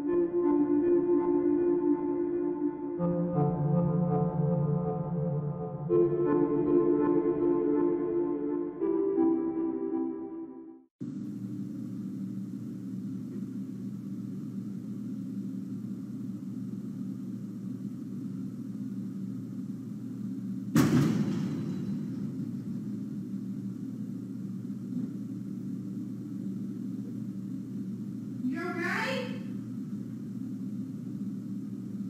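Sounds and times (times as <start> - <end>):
steady low hum: 0.0 - 10.0, 11.0 - 32.0
sudden boom: 20.7 - 23.2.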